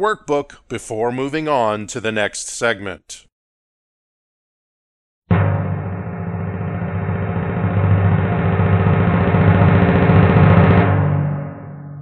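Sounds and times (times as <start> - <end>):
low rumbling drum roll: 5.3 - 12.0
sustained low chord: 5.3 - 12.0.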